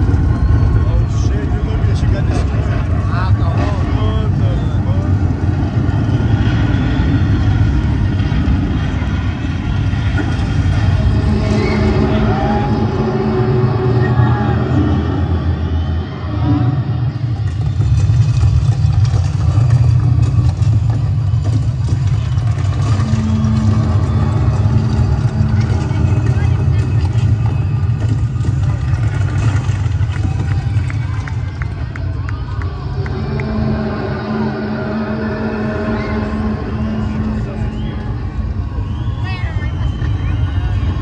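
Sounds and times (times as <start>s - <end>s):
crowd voices: 0.0s - 41.0s
distorted concert low rumble: 0.0s - 41.0s.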